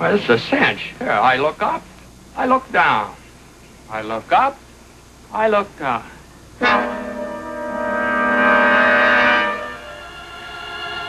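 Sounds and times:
orchestral sustained chord: 6.6s - 11.0s.

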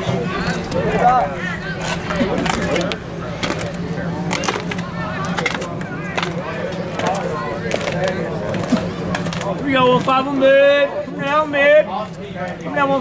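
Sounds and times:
faint voices: 0.0s - 13.0s
steady low hum: 0.0s - 13.0s.

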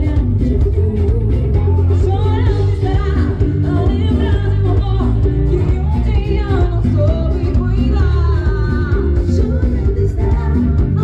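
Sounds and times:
lead singer: 0.0s - 11.0s
live band music: 0.0s - 11.0s
steady bass: 0.0s - 11.0s.

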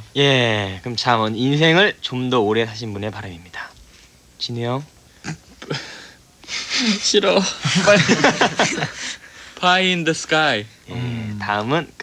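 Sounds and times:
hissing breath: 5.1s - 7.0s.

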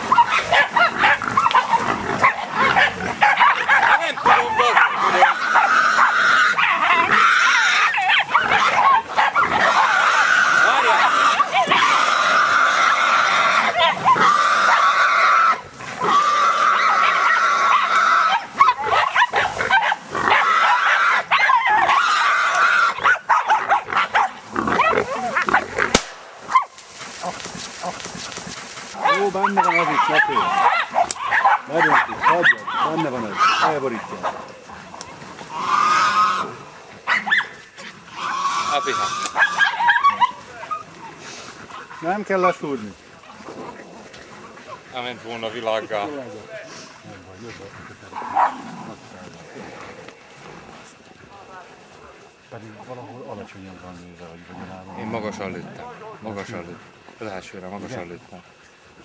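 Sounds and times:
dogs barking and yelping: 0.0s - 46.4s, 47.3s - 49.3s
wild boar squealing: 0.0s - 50.1s.

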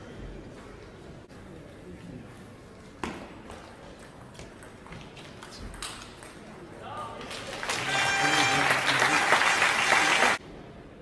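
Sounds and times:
crowd applause and cheering: 7.3s - 10.4s.

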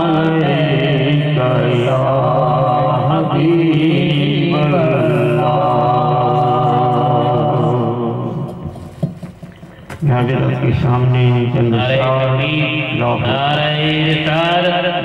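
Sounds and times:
man chanting into a microphone: 0.0s - 8.7s, 10.0s - 15.0s.

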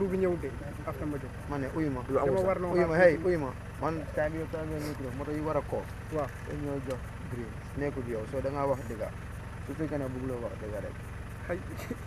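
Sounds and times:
man speaking: 0.0s - 9.1s, 9.7s - 12.0s.

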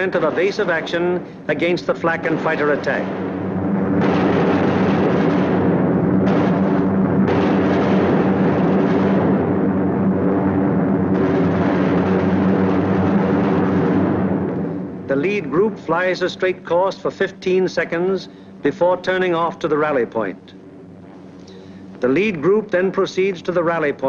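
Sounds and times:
propeller plane engines droning: 0.0s - 24.0s.

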